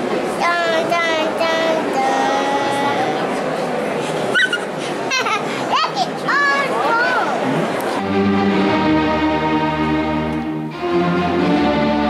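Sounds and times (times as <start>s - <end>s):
audience chatter: 0.0s - 12.0s
child talking and calling out: 0.4s - 3.4s, 5.6s - 7.4s.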